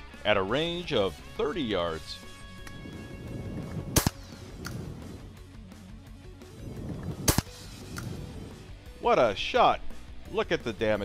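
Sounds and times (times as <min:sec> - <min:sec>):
quiet background music: 0:00.0 - 0:11.0
shotgun shots: 0:03.9 - 0:04.8, 0:07.2 - 0:08.1.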